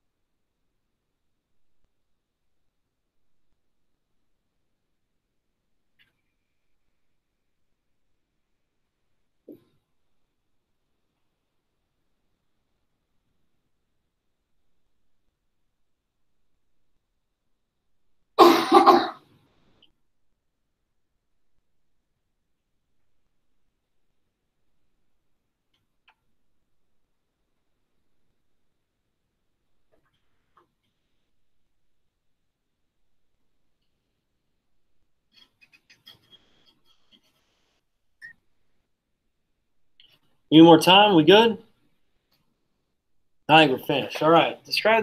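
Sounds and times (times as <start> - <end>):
person clearing throat: 18.4 - 19.2.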